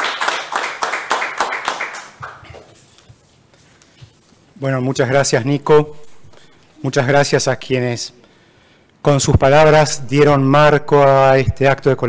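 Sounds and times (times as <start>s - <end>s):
hand clapping: 0.0s - 3.0s.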